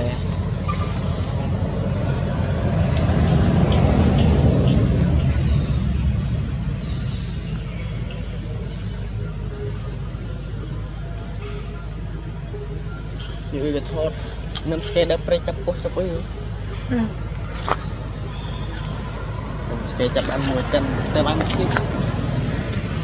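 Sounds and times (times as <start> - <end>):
low choppy rumble: 0.0 - 23.0.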